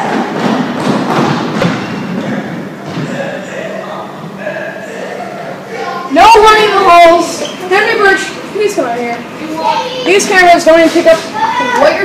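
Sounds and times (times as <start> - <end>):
busy background: 0.0 - 12.0.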